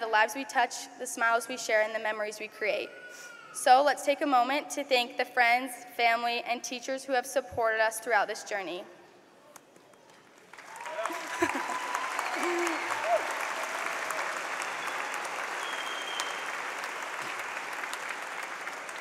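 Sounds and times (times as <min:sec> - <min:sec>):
audience applauding: 0:10.4 - 0:19.0.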